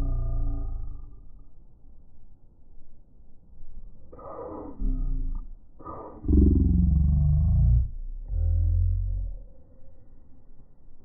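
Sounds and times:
deep drawn-out roar: 0.0 - 1.2, 4.1 - 9.5.

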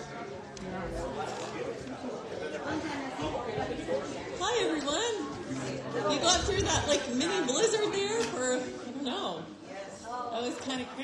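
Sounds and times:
indistinct chatter in a hall: 0.0 - 11.0.

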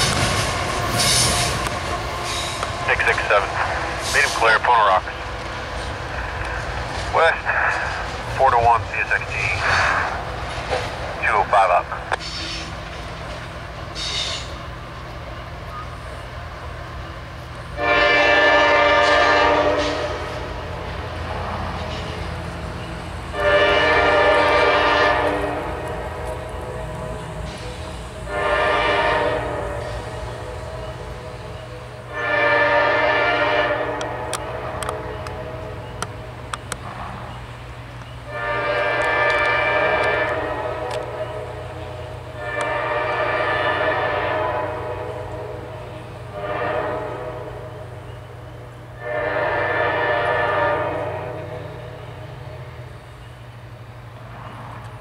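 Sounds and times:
diesel engines rumbling: 0.0 - 55.0
locomotive air horn blasts: 17.8 - 20.5, 23.3 - 30.5, 32.1 - 35.6, 38.3 - 41.6, 42.4 - 45.7, 46.3 - 47.8, 49.0 - 52.0.

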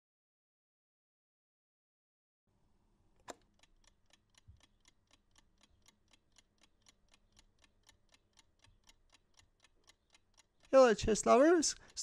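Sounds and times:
chess clock ticking: 3.3 - 12.0.

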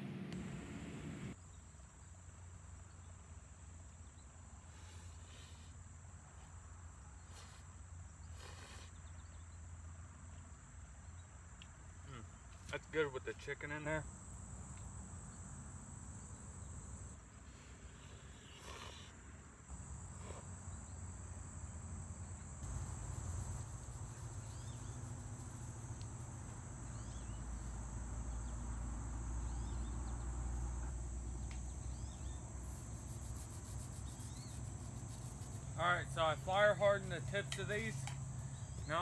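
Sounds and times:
low rumble: 0.0 - 1.4
insects trilling: 11.9 - 39.0
faint chirps: 26.8 - 28.7, 29.4 - 36.3.

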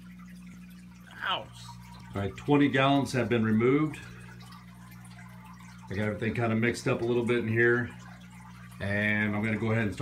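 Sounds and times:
low electrical hum: 0.0 - 10.0
water trickling and dripping: 0.0 - 10.0.

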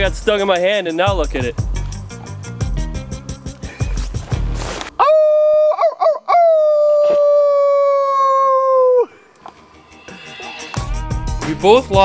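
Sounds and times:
man imitating wolf howl: 5.0 - 9.2.

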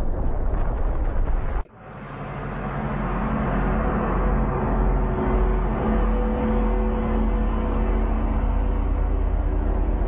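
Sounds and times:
deep rumbling impact: 0.0 - 10.0
low rumble with steady drone: 0.0 - 10.0.

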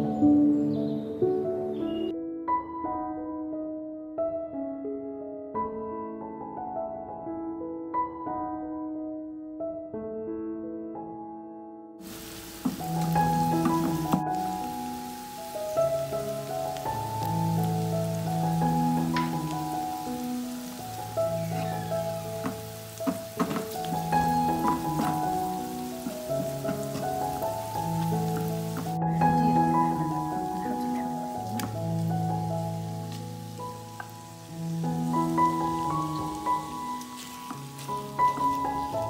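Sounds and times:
slow background music: 0.0 - 39.0
onions sizzling in butter: 12.0 - 39.0.

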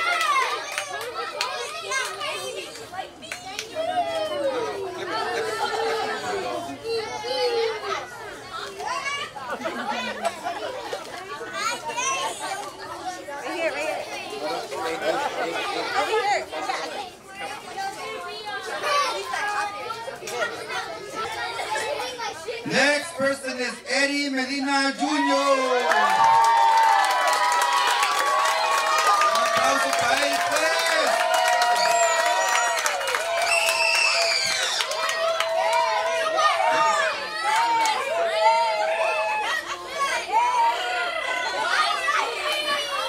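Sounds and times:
children's voices: 0.0 - 23.6, 34.1 - 43.0
crowd chatter: 0.0 - 43.0.

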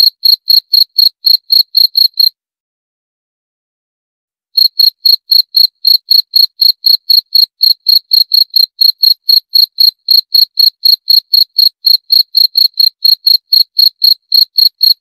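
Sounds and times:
cricket chirping: 0.0 - 2.3, 4.6 - 15.0.

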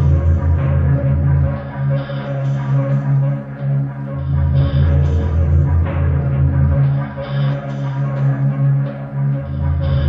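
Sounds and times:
deep bass drone: 0.0 - 10.0
steady bass tone: 0.0 - 10.0.

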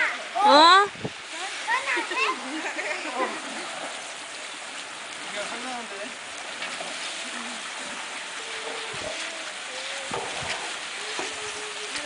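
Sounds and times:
water running in channel: 0.0 - 12.0.

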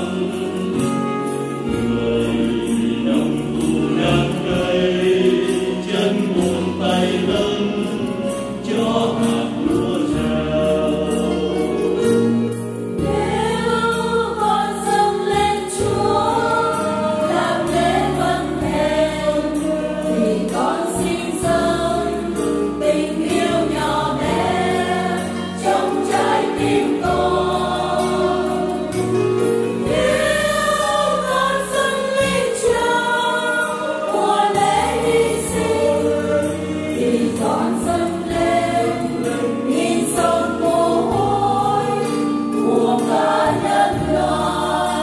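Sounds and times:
choir singing a hymn in parts: 0.0 - 45.0
instrumental accompaniment: 0.0 - 45.0.

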